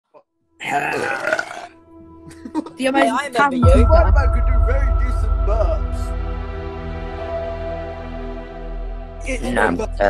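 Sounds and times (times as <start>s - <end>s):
person burping: 0.6s - 1.8s
music playing: 0.6s - 10.0s.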